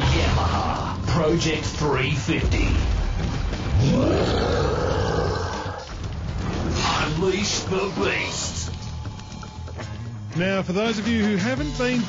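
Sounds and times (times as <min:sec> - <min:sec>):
loud beast-like roar: 0:03.7 - 0:05.9.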